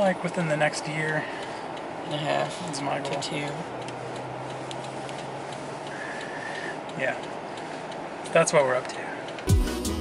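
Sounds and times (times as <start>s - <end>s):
idling car hum: 0.0s - 10.0s
turn signal ticking: 0.0s - 10.0s.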